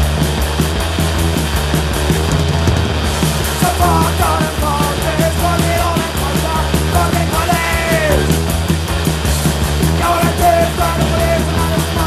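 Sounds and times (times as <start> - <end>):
distorted guitar and bass: 0.0 - 12.0
fast driving drums: 0.0 - 12.0.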